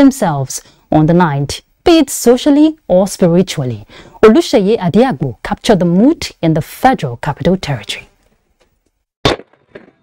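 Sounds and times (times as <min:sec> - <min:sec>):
firework bang: 0:09.2 - 0:10.0.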